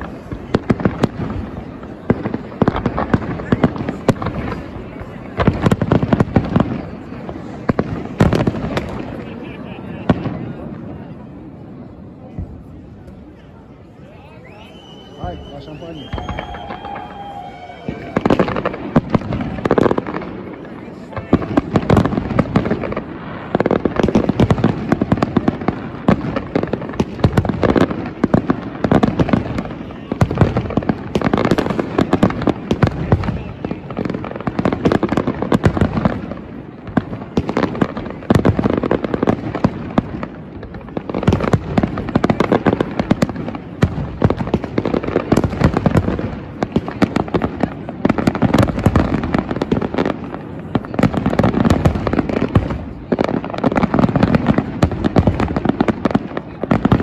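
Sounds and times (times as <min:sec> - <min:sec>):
fireworks bangs and crackling: 0:00.0 - 0:57.0.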